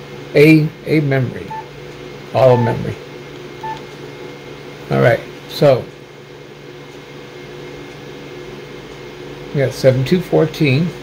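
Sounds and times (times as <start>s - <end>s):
steady low hum: 0.0s - 11.0s
short electronic beep: 1.5s - 1.7s, 2.5s - 2.9s.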